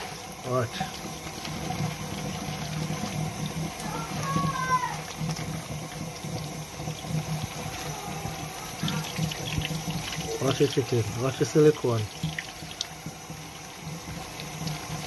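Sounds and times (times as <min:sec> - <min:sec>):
tap water splashing on meat: 0:00.8 - 0:15.0.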